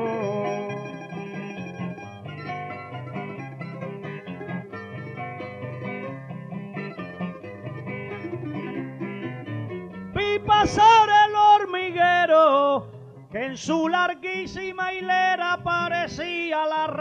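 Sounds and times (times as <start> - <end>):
plucked string instrumental music: 0.0 - 17.0.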